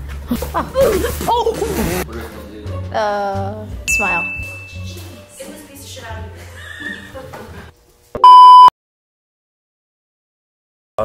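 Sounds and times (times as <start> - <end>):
background music: 0.0 - 7.8
electronic bleep: 8.2 - 8.7.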